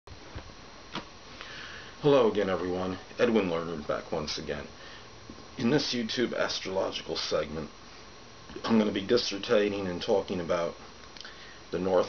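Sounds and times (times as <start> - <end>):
recording hiss: 0.1 - 12.0.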